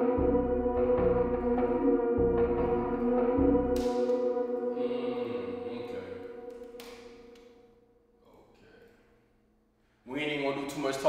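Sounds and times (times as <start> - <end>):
choir-like drone music: 0.0 - 7.6.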